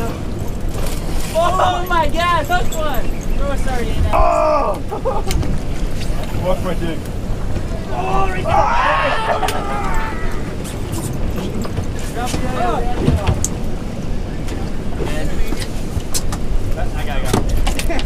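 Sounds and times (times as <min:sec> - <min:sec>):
wind rumble on microphone: 0:00.0 - 0:18.0
people shouting: 0:04.1 - 0:04.8, 0:07.8 - 0:10.6.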